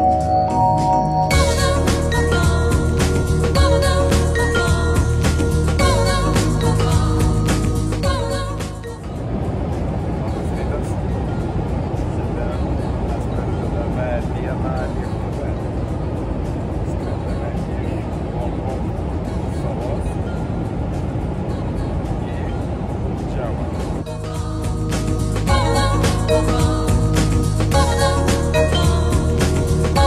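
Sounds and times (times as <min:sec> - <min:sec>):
airliner cabin noise: 0:08.9 - 0:24.1.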